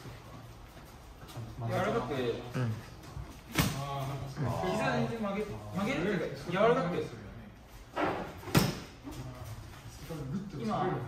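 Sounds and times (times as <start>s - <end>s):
man speaking: 1.6s - 3.0s.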